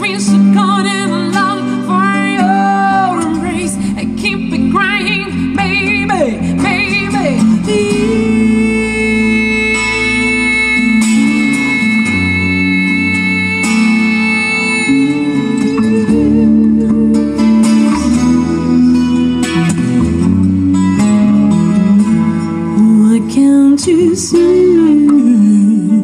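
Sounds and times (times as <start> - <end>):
woman singing wordless phrase: 0.0 - 15.3, 22.8 - 26.0
acoustic guitar: 0.0 - 26.0
bass guitar: 0.0 - 26.0.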